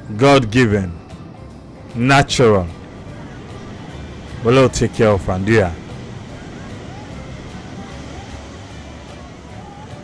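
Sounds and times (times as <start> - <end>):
ocean surf breaking on beach: 1.6 - 10.0.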